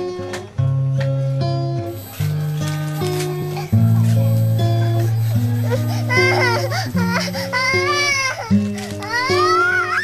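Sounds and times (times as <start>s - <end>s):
instrumental music: 0.0s - 10.0s
toddler crying: 5.2s - 10.0s.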